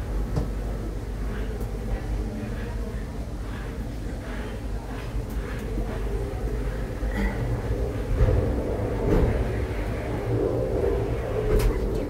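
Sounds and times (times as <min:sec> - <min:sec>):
cable car cabin rumble: 0:00.0 - 0:12.0.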